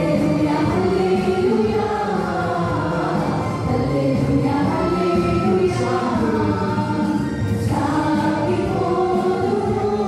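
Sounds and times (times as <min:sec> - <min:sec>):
group singing into microphones: 0:00.0 - 0:10.0.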